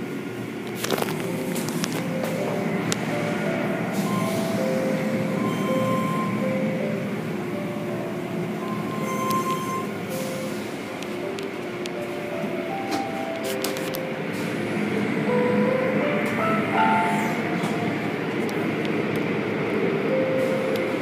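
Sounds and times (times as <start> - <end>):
squealing tones: 8.7 - 10.5.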